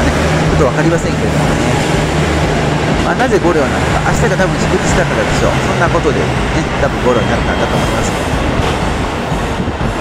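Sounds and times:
diesel engines running: 0:00.0 - 0:10.0.

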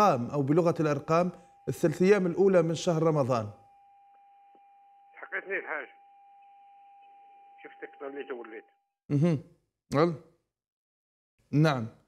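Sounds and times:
faint steady high tone: 0:00.0 - 0:08.6
telephone line hiss: 0:00.0 - 0:08.6
voice on phone line: 0:05.1 - 0:06.0, 0:07.6 - 0:08.7.

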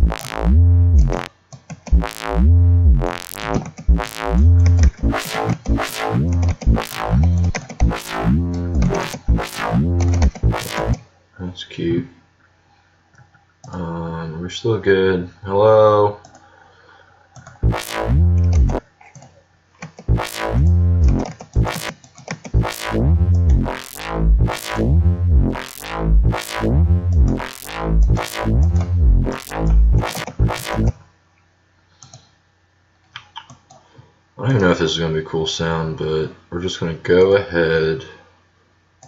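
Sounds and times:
synth bass with filter sweeps: 0:00.0 - 0:01.3, 0:01.9 - 0:11.0, 0:17.6 - 0:18.8, 0:20.1 - 0:21.9, 0:22.6 - 0:31.0.

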